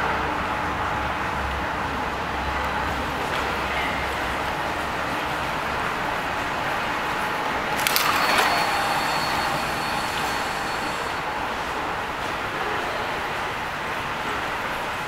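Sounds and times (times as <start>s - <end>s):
thin high tone: 7.7s - 12.3s.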